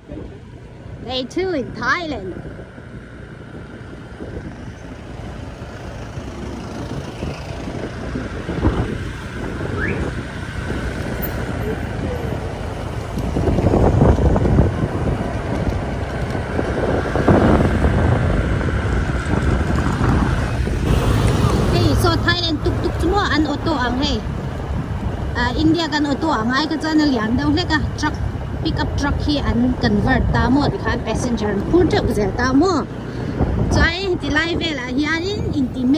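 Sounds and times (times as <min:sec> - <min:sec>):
motorbike engine: 0:00.0 - 0:35.9
wind on microphone: 0:03.7 - 0:26.4, 0:27.3 - 0:35.9.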